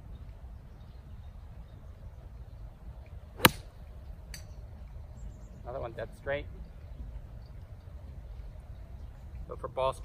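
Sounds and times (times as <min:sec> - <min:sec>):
golf club striking ball: 0:03.4 - 0:04.5.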